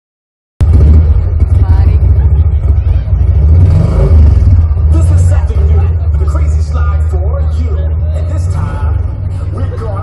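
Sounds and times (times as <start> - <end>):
loud low rumble: 0.6 - 10.0.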